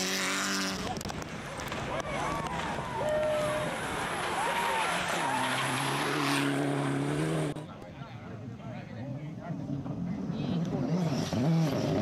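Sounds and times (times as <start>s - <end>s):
rally car engine at high revs: 0.0s - 1.1s, 4.0s - 7.8s, 9.7s - 12.0s.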